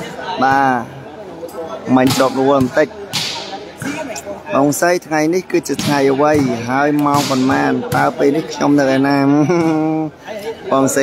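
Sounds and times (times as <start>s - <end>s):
volleyball smack: 3.1s - 4.0s.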